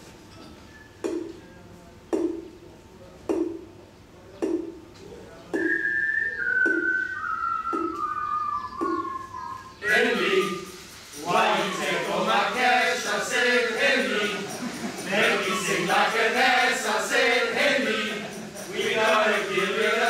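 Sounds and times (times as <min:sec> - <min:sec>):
slow steady thumps: 0:02.1 - 0:02.5, 0:03.3 - 0:03.7, 0:05.6 - 0:09.3
person whistling a tune: 0:05.6 - 0:10.8.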